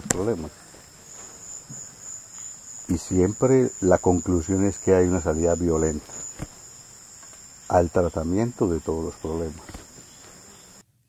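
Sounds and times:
insects trilling: 0.0 - 10.8.

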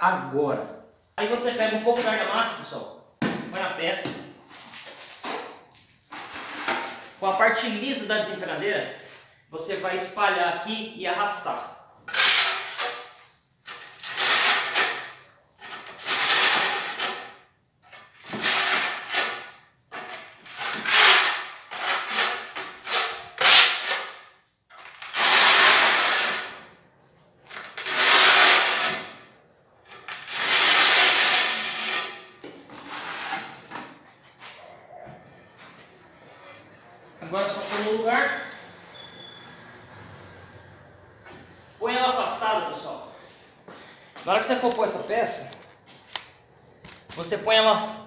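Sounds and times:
trowel scraping mortar on tile: 4.5 - 7.2, 12.1 - 26.6, 27.5 - 34.6.

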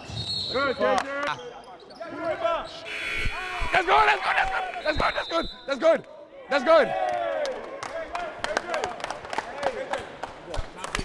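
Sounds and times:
hand claps and high-five slaps: 7.1 - 11.0.

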